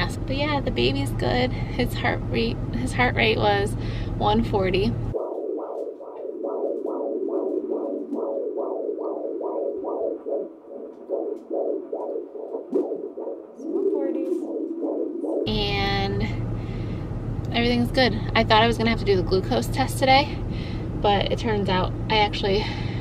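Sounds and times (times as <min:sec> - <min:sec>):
fetal heartbeat on doppler: 0:00.0 - 0:17.0.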